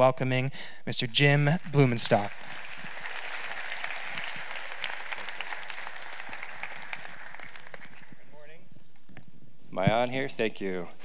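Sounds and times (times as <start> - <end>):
audience applauding: 1.3 - 8.5.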